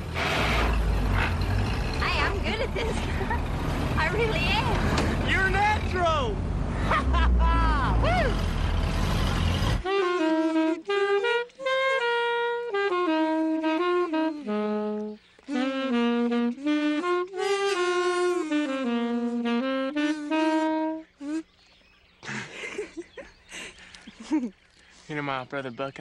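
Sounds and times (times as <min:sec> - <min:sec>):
car rumble and wind: 0:00.0 - 0:09.9
man laughing: 0:02.5 - 0:03.4, 0:06.8 - 0:08.3, 0:22.2 - 0:24.6
slow saxophone melody: 0:08.9 - 0:21.6.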